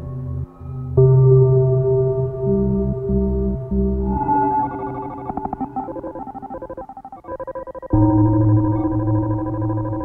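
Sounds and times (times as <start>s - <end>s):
glitchy electronic music: 4.0s - 8.8s.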